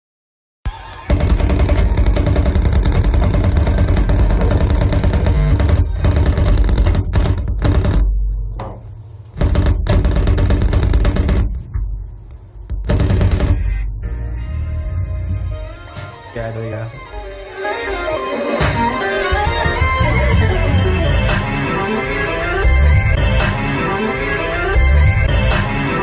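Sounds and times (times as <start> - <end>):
distorted harsh noise music: 0.7 - 26.0.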